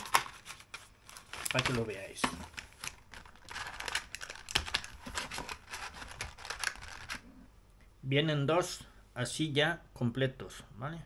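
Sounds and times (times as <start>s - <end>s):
plastic packaging crinkling: 0.0s - 7.3s.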